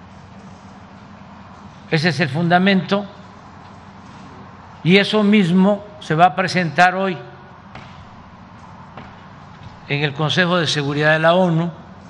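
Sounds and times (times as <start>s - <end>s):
man speaking into a microphone: 1.9s - 3.2s, 4.8s - 7.4s, 9.8s - 11.8s.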